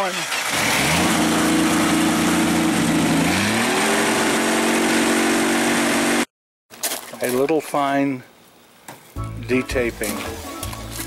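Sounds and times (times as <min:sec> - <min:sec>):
car engine running and revving: 0:00.4 - 0:06.3.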